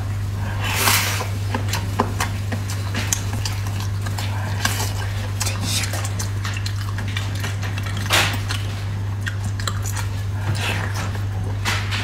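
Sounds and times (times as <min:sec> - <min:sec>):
steady low hum: 0:00.0 - 0:12.0
chewing with wet mouth smacks: 0:00.4 - 0:12.0
wet bite and slurp: 0:00.5 - 0:11.3.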